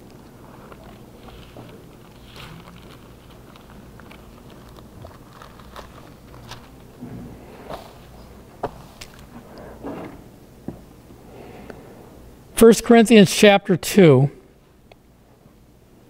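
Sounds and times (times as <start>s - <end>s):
steady low hum: 0.0s - 16.0s
pages rustling: 0.5s - 7.0s.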